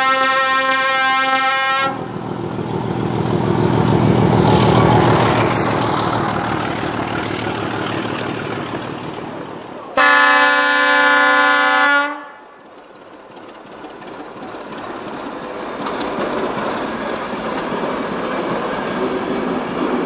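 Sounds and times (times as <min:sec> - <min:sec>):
locomotive horn blast: 0:00.0 - 0:02.1, 0:09.9 - 0:12.5
train engine and running gear passing: 0:00.0 - 0:20.0
train wheel clicks: 0:12.6 - 0:20.0.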